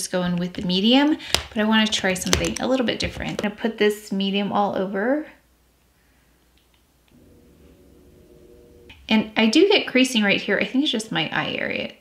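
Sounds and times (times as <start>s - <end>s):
faint steady tonal hum: 7.1s - 10.7s.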